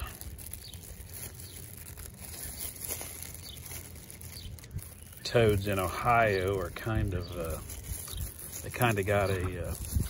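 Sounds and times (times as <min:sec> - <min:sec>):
plastic glove crinkling: 0:00.0 - 0:10.0.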